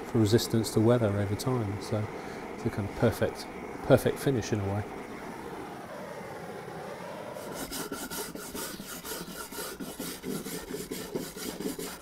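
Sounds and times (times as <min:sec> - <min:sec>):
wire brush scrubbing wood: 0:07.4 - 0:12.0.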